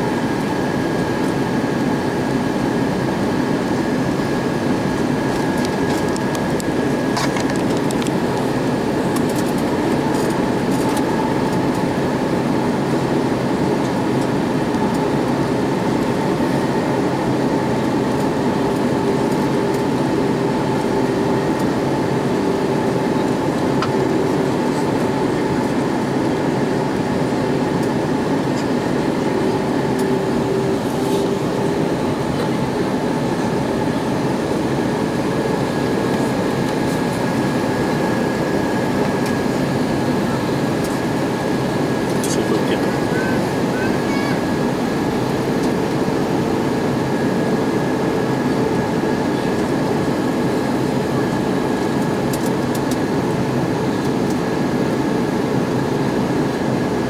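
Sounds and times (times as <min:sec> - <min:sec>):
faint steady engine tones: 0:00.0 - 0:57.0
jet engine drone: 0:00.0 - 0:57.0
rush of air in aircraft cabin: 0:00.0 - 0:57.0.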